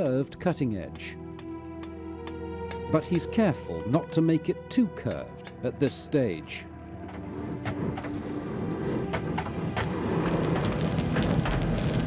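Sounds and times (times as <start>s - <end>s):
coals crackling: 0.0s - 12.0s
charcoal fire rumbling: 7.2s - 12.0s.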